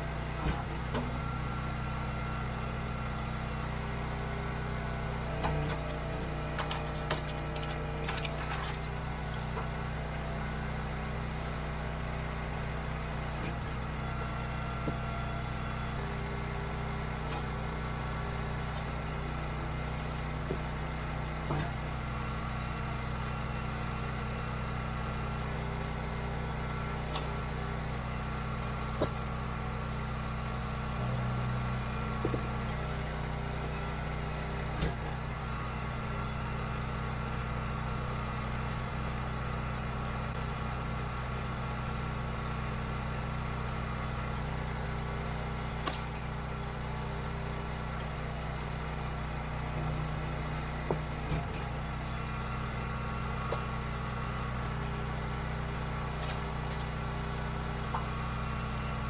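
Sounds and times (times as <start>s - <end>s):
log splitter engine running: 0.0s - 59.0s.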